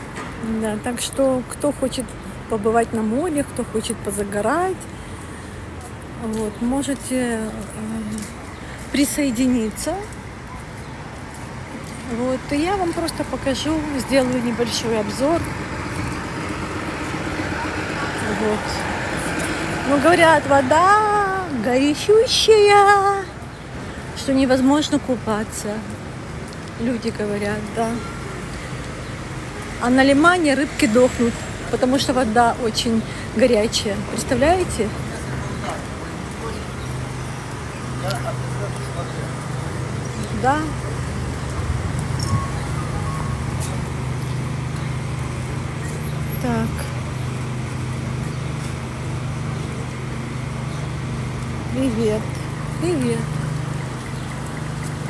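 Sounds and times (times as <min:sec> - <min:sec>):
city street traffic: 0:00.0 - 0:55.0
woman speaking: 0:00.4 - 0:04.8, 0:06.2 - 0:08.3, 0:08.9 - 0:10.2, 0:12.0 - 0:15.5, 0:17.9 - 0:19.1, 0:19.8 - 0:23.4, 0:24.2 - 0:25.9, 0:26.8 - 0:28.1, 0:29.8 - 0:35.0, 0:40.2 - 0:40.8, 0:46.4 - 0:47.0, 0:51.7 - 0:53.4
minibus engine running: 0:11.7 - 0:55.0.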